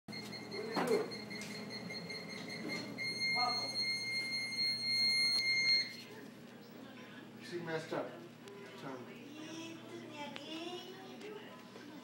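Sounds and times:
high electronic beeper tone: 0.4 - 6.0.

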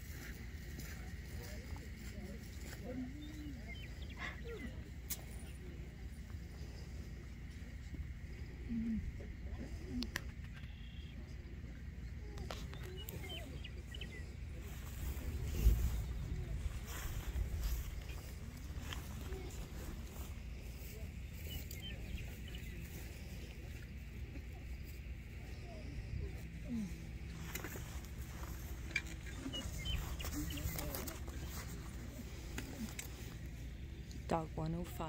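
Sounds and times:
faint murmured voices: 0.0 - 35.0
wind noise on microphone: 14.8 - 18.8.

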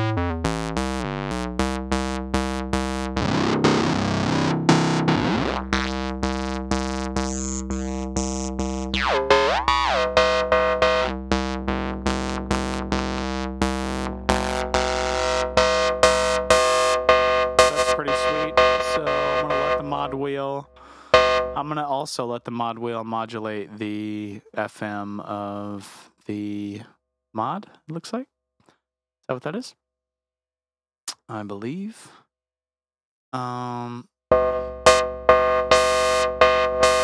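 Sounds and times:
synth playing quick repeated notes: 0.0 - 20.3, 21.1 - 21.6, 34.3 - 37.0.

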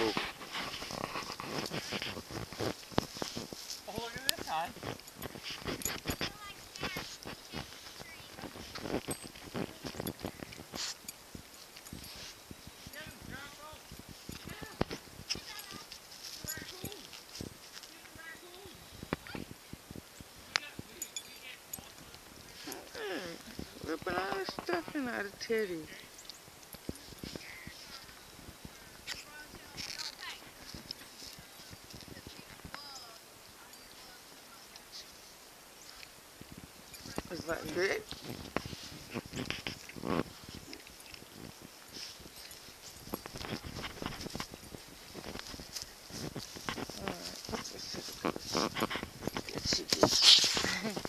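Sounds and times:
dog snuffling: 0.0 - 19.5, 37.0 - 51.0.

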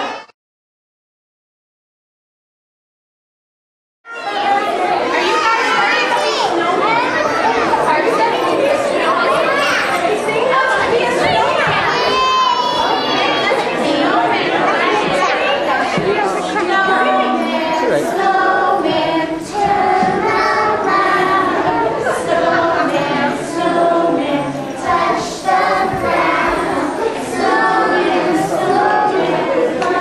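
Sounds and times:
children chattering: 0.0 - 0.3, 4.1 - 30.0
children singing together: 4.2 - 30.0.

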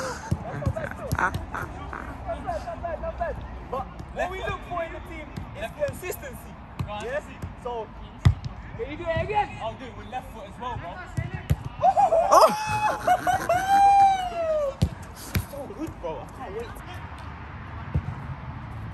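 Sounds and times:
voices talking: 0.0 - 6.5
football kicked on artificial turf: 0.2 - 1.6, 3.8 - 7.6, 8.2 - 8.6, 17.8 - 18.4.

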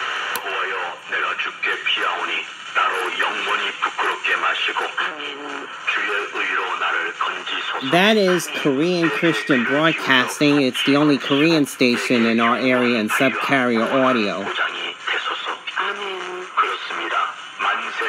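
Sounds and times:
radio hiss: 0.0 - 18.0
person talking over small radio speaker: 0.3 - 18.0.

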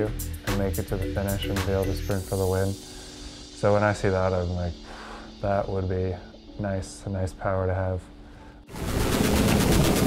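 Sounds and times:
loud rapid rattle: 8.8 - 10.0.

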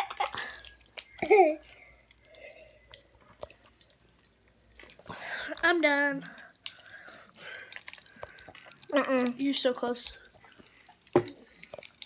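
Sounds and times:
popping candy clicks: 0.0 - 12.0
sipping and swallowing: 6.2 - 9.4.

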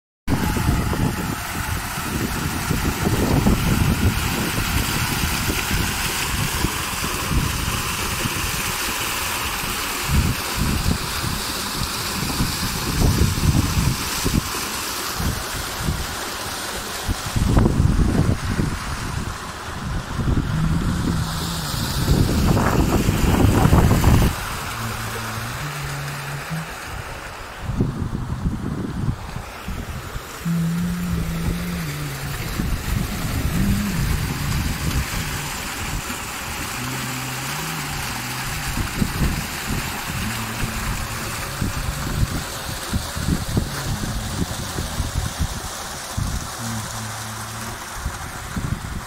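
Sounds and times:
fountain water splashing: 0.3 - 49.0
wind on microphone: 0.3 - 49.0.

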